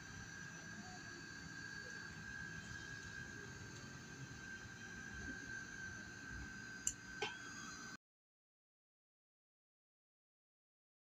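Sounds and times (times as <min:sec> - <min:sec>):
neck fan motor whine: 0:00.0 - 0:08.0.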